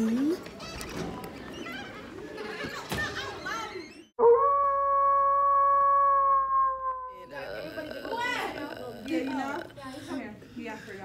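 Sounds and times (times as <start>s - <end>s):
voices talking: 7.2s - 11.0s.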